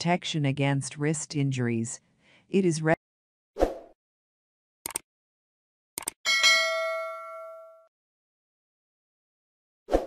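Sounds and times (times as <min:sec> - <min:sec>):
sharp clicks: 0:04.8 - 0:05.1, 0:06.0 - 0:06.2
bright bell ding: 0:06.3 - 0:07.9.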